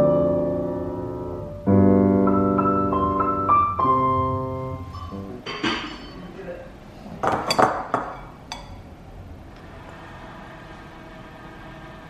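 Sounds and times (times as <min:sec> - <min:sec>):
crockery clinking and knocking: 0:04.9 - 0:06.3, 0:07.2 - 0:08.8.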